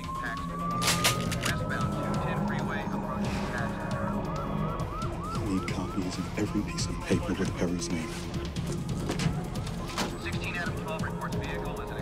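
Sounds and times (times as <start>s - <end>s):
police siren wailing and yelping: 0.0s - 11.4s
low background music: 0.0s - 12.0s.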